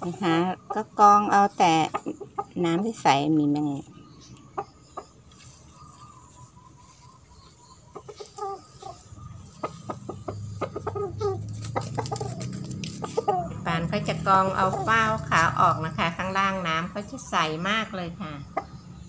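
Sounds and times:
chickens clucking: 0.0 - 19.0.

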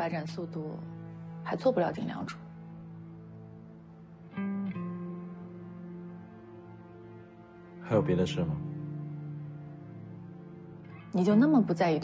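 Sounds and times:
man speaking: 7.9 - 8.6.

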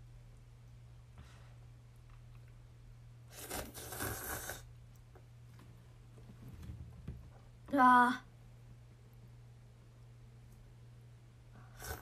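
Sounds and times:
slurping noodles: 3.3 - 4.7, 11.7 - 12.0.

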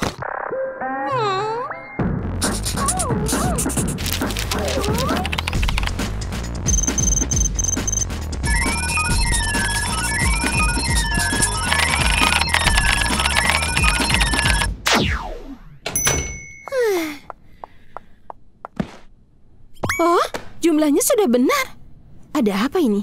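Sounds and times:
electronic music with rapid beeps: 6.6 - 14.7.

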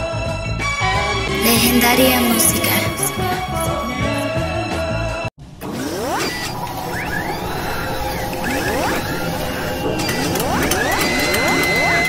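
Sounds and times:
steady high tone: 1.0 - 4.3, 5.9 - 12.0
rapid mechanical clicks and clanks: 5.6 - 12.0.

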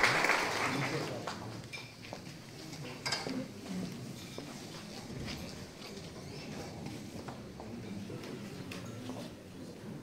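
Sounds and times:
faint hall room noise: 0.0 - 10.0.

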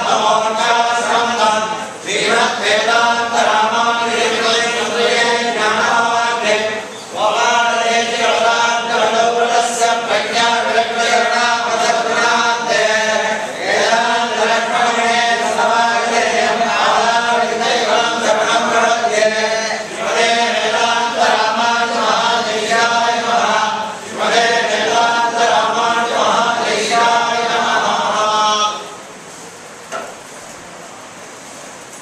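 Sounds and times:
men chanting in unison: 0.0 - 29.0.

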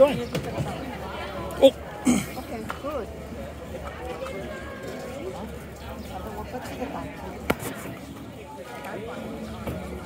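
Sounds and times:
indistinct talking: 0.0 - 10.0.

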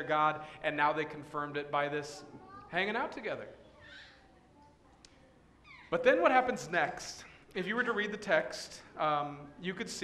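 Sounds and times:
man speaking: 0.0 - 3.6, 5.9 - 10.0.

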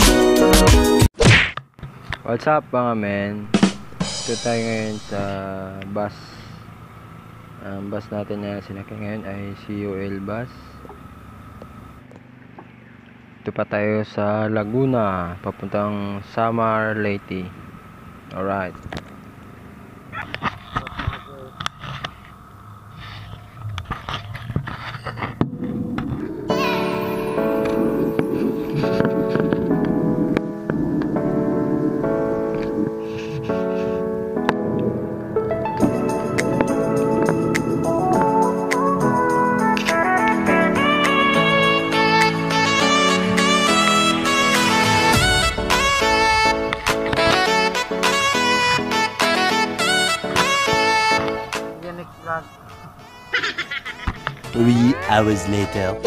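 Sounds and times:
intro music with a beat: 0.0 - 1.1, 3.5 - 5.2, 35.6 - 51.7
low steady bus hum: 1.9 - 56.0.

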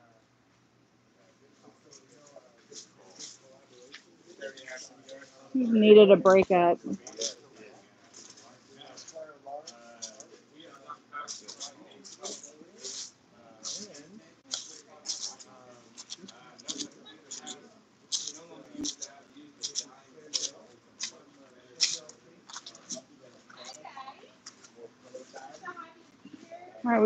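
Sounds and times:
indistinct background talk: 1.0 - 27.0.

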